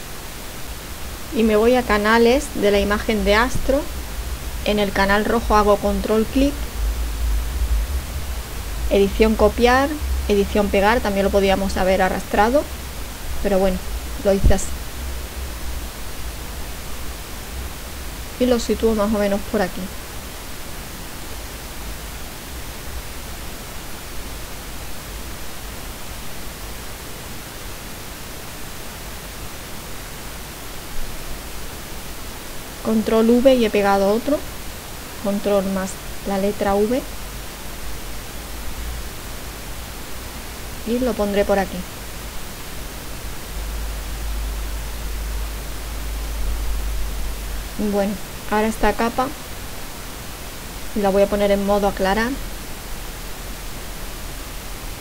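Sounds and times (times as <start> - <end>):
low hum: 0.0 - 28.2, 30.0 - 55.0
steady hiss: 0.0 - 55.0.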